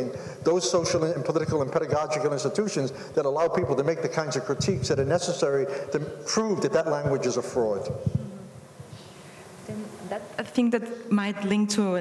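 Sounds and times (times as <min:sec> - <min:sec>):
person speaking in echoing hall: 0:00.0 - 0:12.0.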